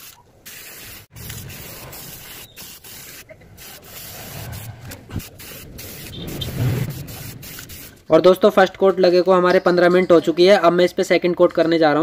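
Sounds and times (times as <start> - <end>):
spray paint can hissing: 0.0 - 8.1
low rumble: 3.9 - 8.1.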